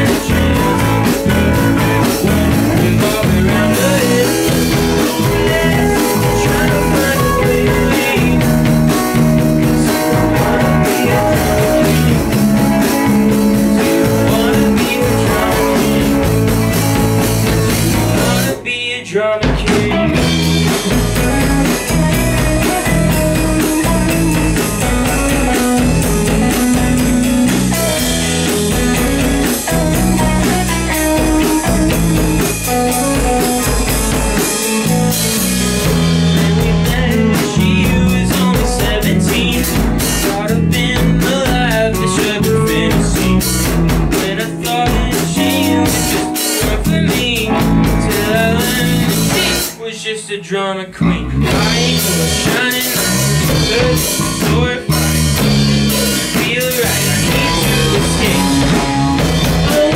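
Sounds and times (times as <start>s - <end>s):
drum kit: 0.0s - 49.8s, 51.4s - 59.9s
electric guitars: 0.0s - 59.9s.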